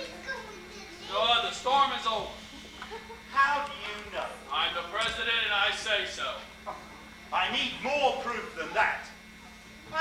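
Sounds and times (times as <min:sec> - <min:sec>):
steady electrical hum: 0:00.0 - 0:10.0.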